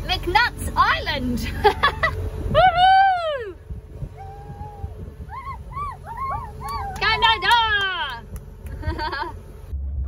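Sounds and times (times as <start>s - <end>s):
wind rumble: 0.0s - 10.0s
people whooping: 2.5s - 7.9s.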